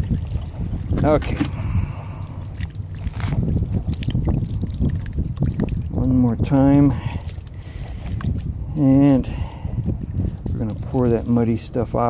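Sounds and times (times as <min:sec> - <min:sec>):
muddy water sloshing in a pan: 0:00.0 - 0:12.0.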